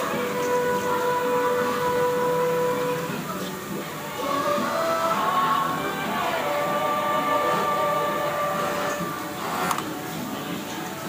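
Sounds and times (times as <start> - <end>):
music with long held notes: 0.0 - 11.0.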